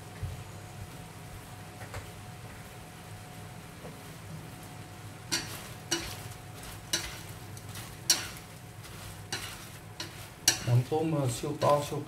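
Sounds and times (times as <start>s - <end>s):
shrimp sizzling in a frying pan: 5.2s - 12.0s
chopsticks knocking against pan: 9.3s - 10.8s.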